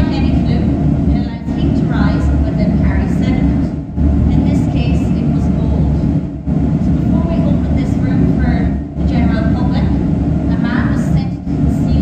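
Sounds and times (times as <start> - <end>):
woman speaking: 0.0 - 3.7, 4.3 - 6.1, 6.9 - 12.0
loud steady low rumble: 0.0 - 12.0.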